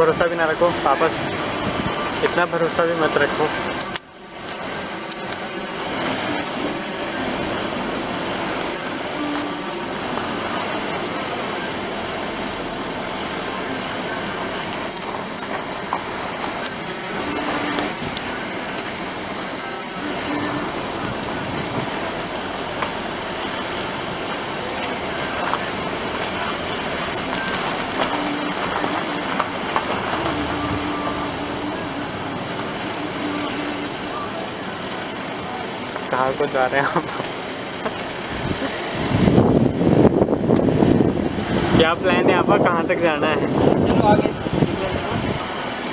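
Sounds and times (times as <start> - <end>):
car driving heard from inside: 0.0 - 45.9.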